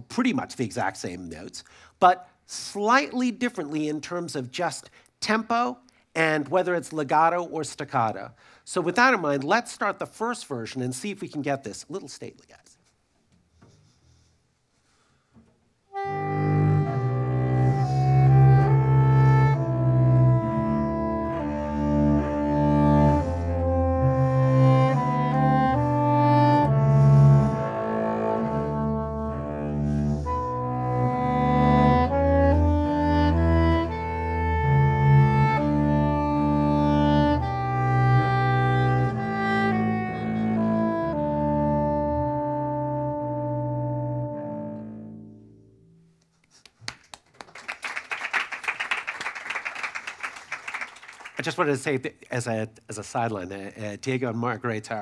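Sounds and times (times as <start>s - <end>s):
slow classical duo piece: 12.8s - 51.5s
audience applauding: 46.6s - 51.6s.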